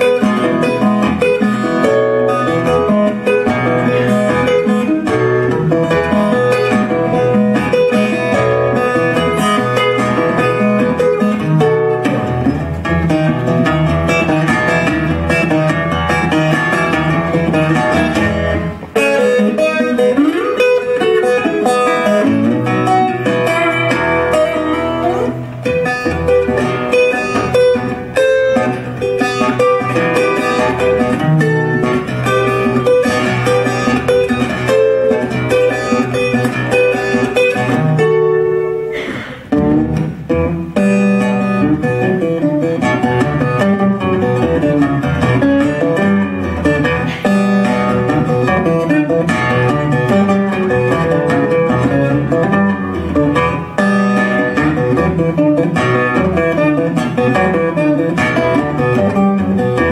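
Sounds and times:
fingerpicked acoustic guitar: 0.0 - 59.9.

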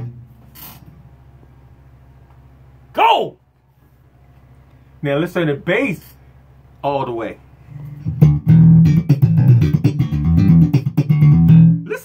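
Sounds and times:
electric bass plucked run: 0.0 - 1.2, 7.7 - 12.0.

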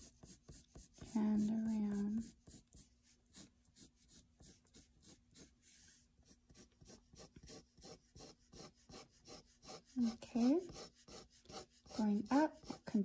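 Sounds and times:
pencil sketching on paper: 0.0 - 13.0.

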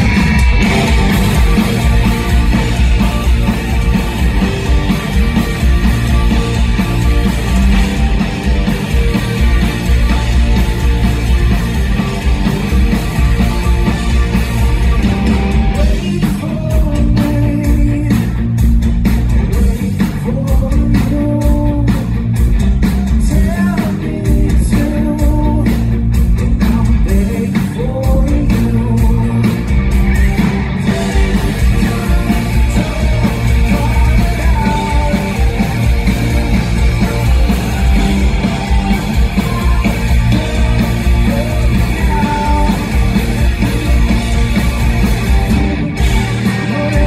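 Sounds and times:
rock band playing: 0.0 - 47.0
man singing: 15.8 - 18.4, 19.5 - 22.0, 22.9 - 25.8, 26.6 - 29.6, 30.8 - 43.0, 46.6 - 47.0.

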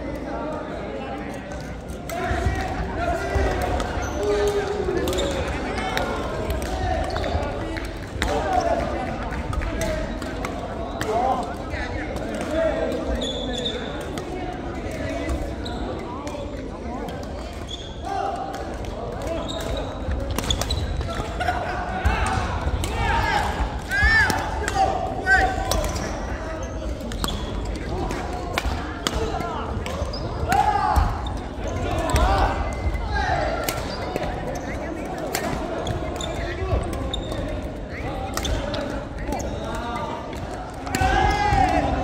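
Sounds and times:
voices of players: 0.0 - 42.0
shoe squeaks: 13.2 - 13.9, 17.6 - 18.0, 35.8 - 38.7
rackets striking shuttlecock: 25.4 - 33.0.

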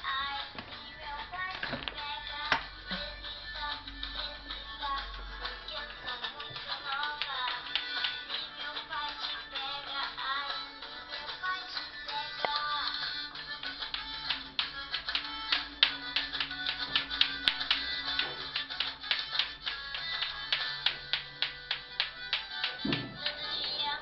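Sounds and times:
background music: 0.0 - 24.0
clacker toy balls clicking: 13.7 - 23.8.

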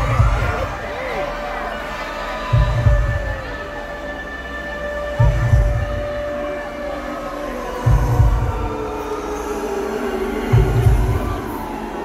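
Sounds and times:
deep heartbeat-like boom: 0.0 - 0.8, 2.5 - 3.5
sinking drone: 0.0 - 12.0.

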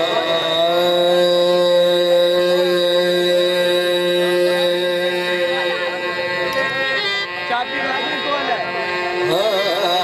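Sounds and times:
harmonium sustained chord: 0.0 - 10.0.

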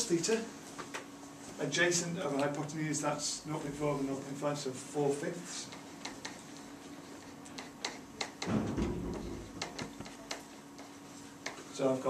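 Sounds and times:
pen tapping on whiteboard: 5.7 - 6.4, 7.2 - 11.6.

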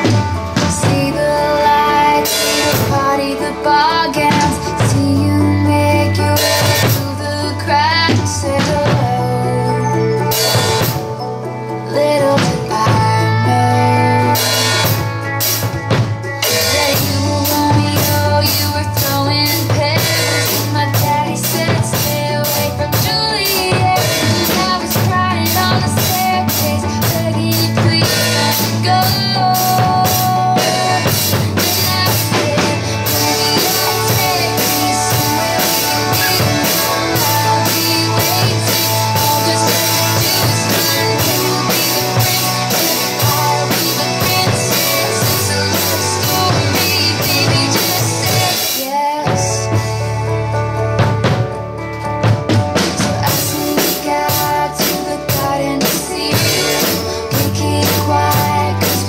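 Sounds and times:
acoustic drum kit beat: 0.0 - 59.0
pop backing track: 0.0 - 59.0.

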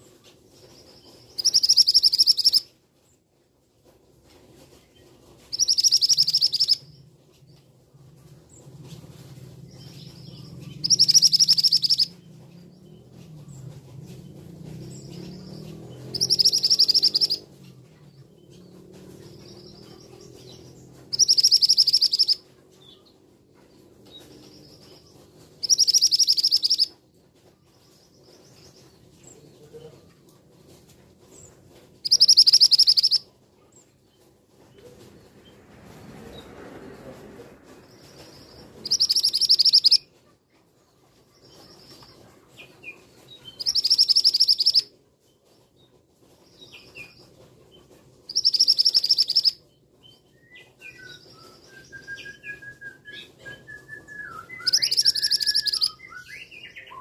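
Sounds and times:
bird calling high-pitched: 1.4 - 2.6, 5.5 - 6.8, 10.8 - 12.2, 16.0 - 17.5, 21.1 - 22.4, 25.6 - 26.9, 32.0 - 33.2, 38.8 - 40.0, 43.6 - 44.9, 48.3 - 49.6, 54.3 - 57.0.

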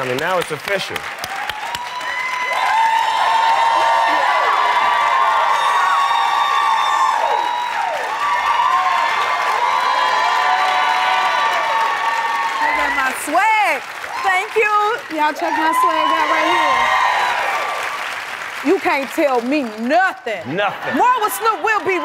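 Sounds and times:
audience clapping: 0.0 - 22.0
audience cheering and screaming: 1.2 - 18.3, 20.8 - 22.0.

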